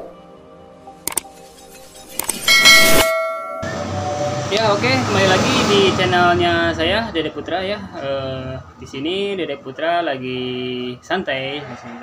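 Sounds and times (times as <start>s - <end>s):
quick clicks: 1.1s - 1.3s, 2.1s - 2.5s
bright ringing chime: 2.3s - 4.3s.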